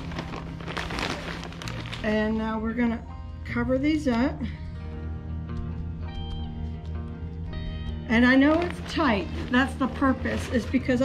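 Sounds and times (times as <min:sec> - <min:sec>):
plastic bag rustling: 0:00.0 - 0:02.4, 0:08.3 - 0:11.0.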